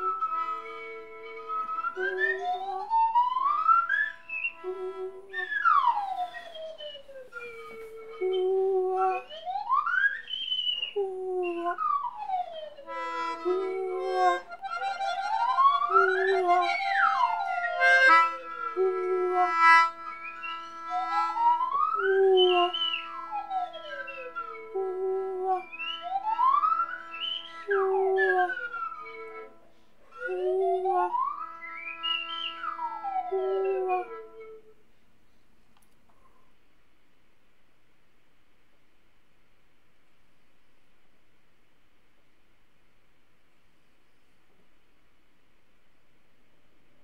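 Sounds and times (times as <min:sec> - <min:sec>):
sliding whistling pitches: 0:00.0 - 0:34.7
wind instrument long held notes: 0:00.0 - 0:34.8.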